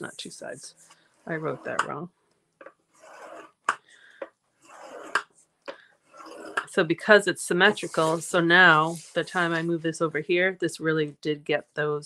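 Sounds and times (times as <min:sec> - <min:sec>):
stylus scraping along paper: 0:00.0 - 0:02.0, 0:02.6 - 0:03.8, 0:04.6 - 0:09.8.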